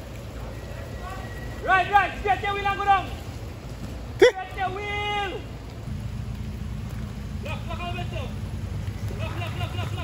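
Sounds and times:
suv engine low rumble: 0:03.3 - 0:10.0.

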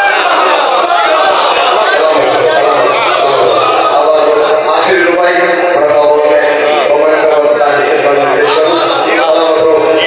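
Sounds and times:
man chanting over loudspeakers: 0:01.8 - 0:10.0.

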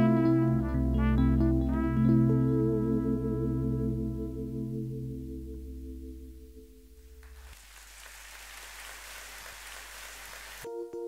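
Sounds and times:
audience applause: 0:07.2 - 0:10.7.

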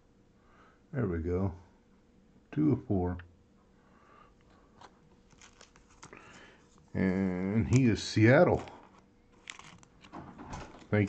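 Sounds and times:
trading cards clicking and scraping: 0:04.4 - 0:06.9, 0:07.7 - 0:10.2
person speaking: 0:06.9 - 0:09.0.

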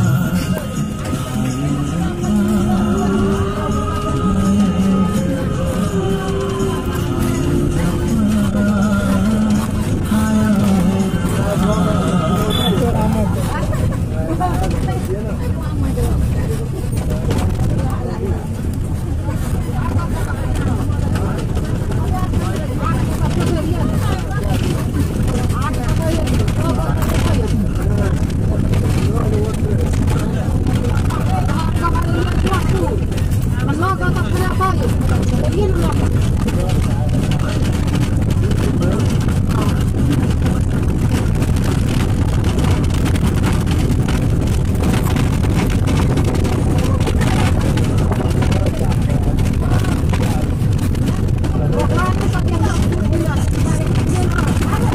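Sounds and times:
bus engine and road rumble: 0:00.0 - 0:54.9
people chattering: 0:00.0 - 0:54.9.

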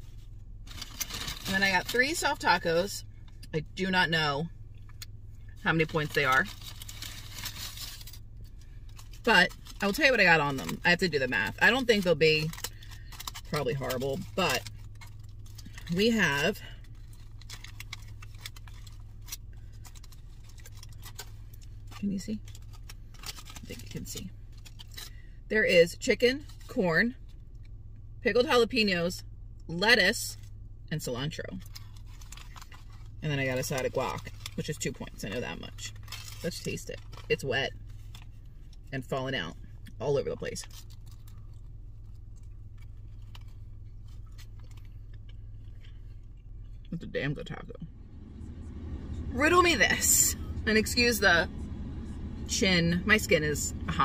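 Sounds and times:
steady low hum: 0:00.0 - 0:54.0
foil wrapper crinkling: 0:00.1 - 0:02.5, 0:05.8 - 0:25.2, 0:31.6 - 0:38.8, 0:40.6 - 0:46.8.

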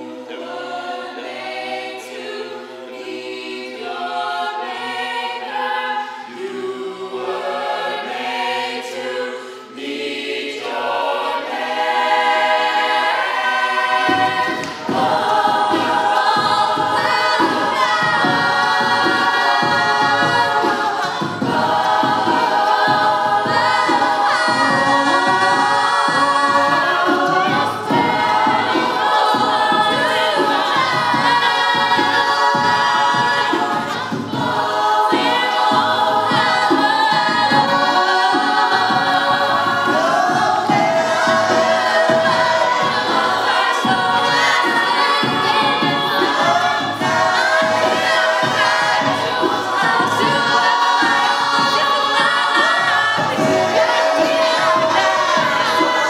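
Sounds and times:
a cappella group singing in harmony: 0:00.0 - 0:56.0
rhythmic low pulse: 0:11.4 - 0:56.0.

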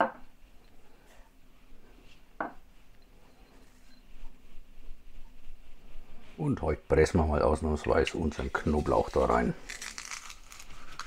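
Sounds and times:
scraping and handling sounds: 0:07.9 - 0:11.0.

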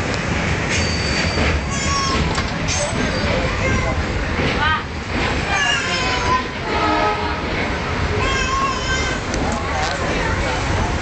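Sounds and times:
train carriage rumbling: 0:00.0 - 0:11.0.

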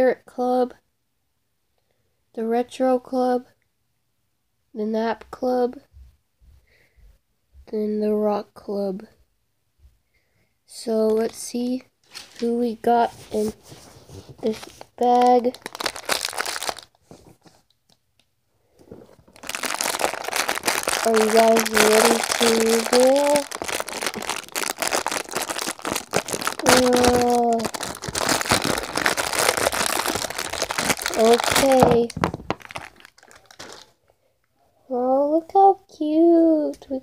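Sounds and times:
plastic packaging crinkling: 0:12.1 - 0:12.5, 0:13.3 - 0:17.4, 0:18.8 - 0:34.0.

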